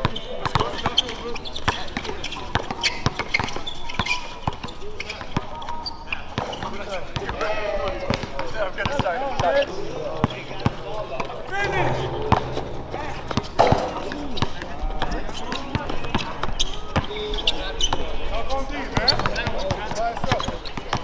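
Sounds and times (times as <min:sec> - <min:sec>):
people talking: 0:06.6 - 0:20.4.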